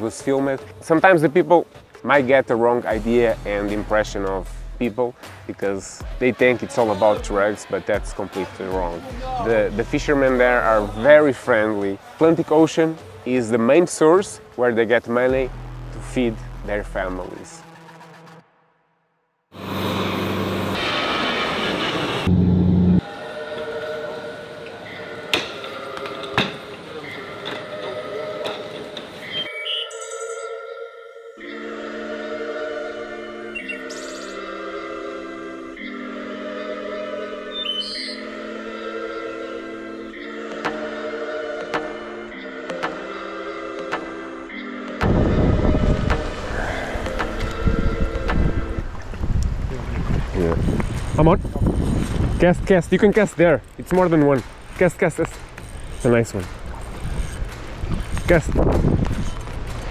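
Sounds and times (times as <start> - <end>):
background music: 0.0 - 18.8, 22.2 - 49.3, 52.4 - 59.9
turboprop engine drone: 19.6 - 23.0
wind buffeting microphone: 45.0 - 53.1, 56.6 - 59.9.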